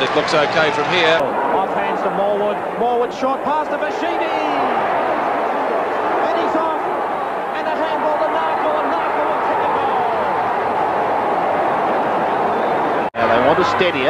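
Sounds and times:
stadium crowd cheering: 0.0s - 14.0s.

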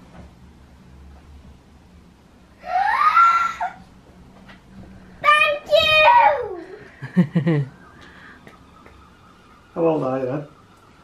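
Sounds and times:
girl squealing with delight: 2.6s - 3.8s.

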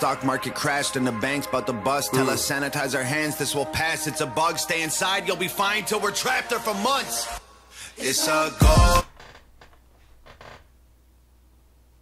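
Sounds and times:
faint low hum: 9.2s - 12.0s.

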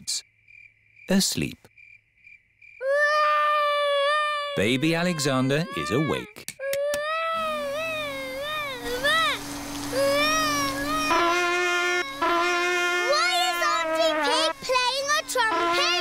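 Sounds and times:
animated baby crying: 2.8s - 9.4s, 13.0s - 16.0s
steady droning hum: 7.3s - 16.0s
higher steady tone: 7.4s - 16.0s.

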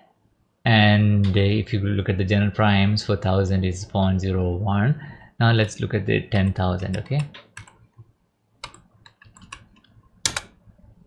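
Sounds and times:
computer keyboard keystrokes: 6.8s - 7.8s, 8.6s - 10.6s.

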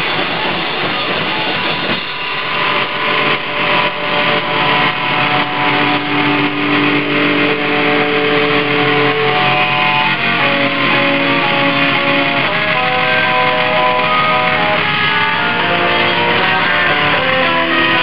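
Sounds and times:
drum kit beat: 0.0s - 18.0s
electric guitar held notes: 0.0s - 18.0s.

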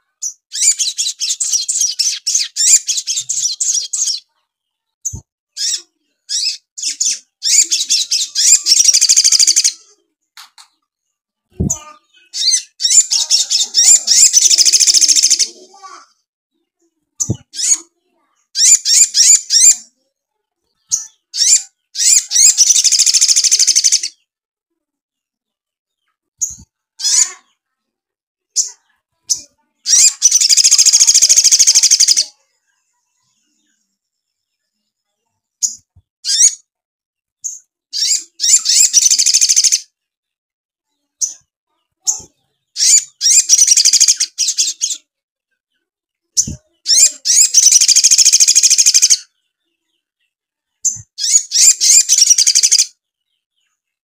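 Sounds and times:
sunbird twittering song: 37.4s - 39.8s, 42.7s - 45.0s, 50.8s - 53.8s.

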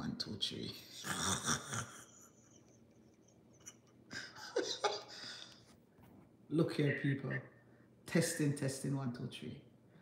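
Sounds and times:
woman laughing under her breath: 3.5s - 5.6s.

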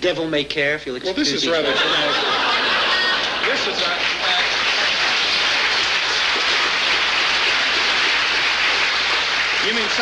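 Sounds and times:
audience applauding: 2.0s - 10.0s.

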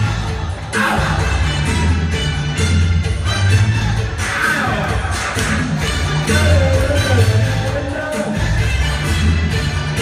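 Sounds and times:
heavy bass line: 0.0s - 10.0s
lively crowd: 0.0s - 10.0s
upbeat electronic keyboard music: 0.0s - 10.0s.

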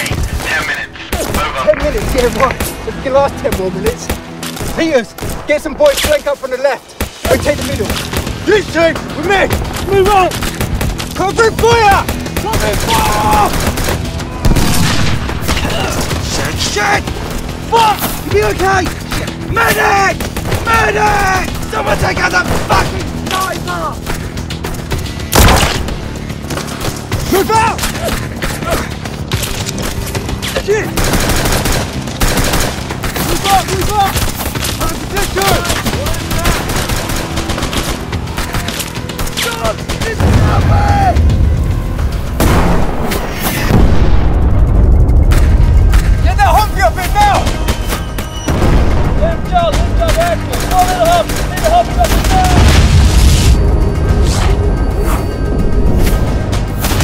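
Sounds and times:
rapid rifle shots: 7.0s - 17.6s, 25.3s - 40.3s, 49.7s - 52.8s
rapid automatic gunfire: 30.9s - 34.6s, 35.2s - 38.5s.

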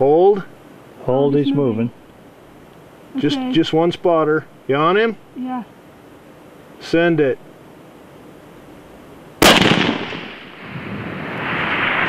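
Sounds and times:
rifle shot with rolling echo: 9.4s - 12.0s.

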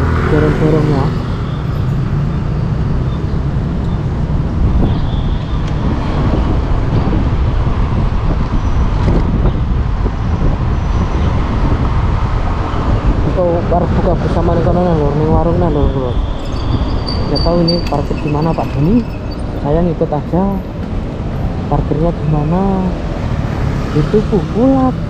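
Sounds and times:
wind on microphone: 0.0s - 21.8s
road and traffic noise: 0.0s - 25.0s.

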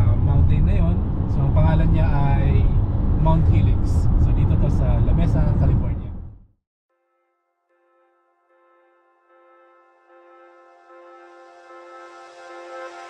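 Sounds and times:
car rumbling: 0.0s - 6.4s.

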